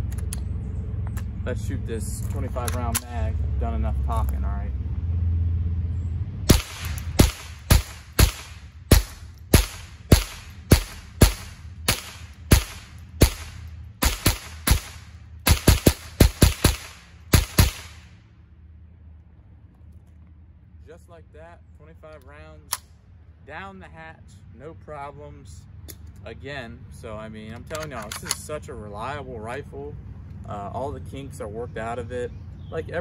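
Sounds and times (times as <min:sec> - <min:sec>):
rifle shots with echo: 0:06.5 - 0:18.1.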